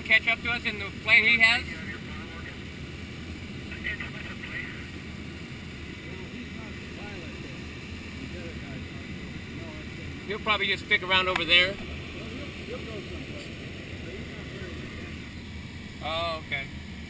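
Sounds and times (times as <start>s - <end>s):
airflow rushing over glider canopy: 0.0s - 17.0s.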